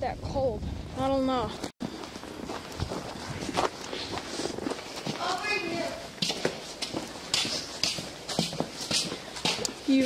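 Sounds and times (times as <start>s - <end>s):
footsteps walking: 1.6s - 10.0s.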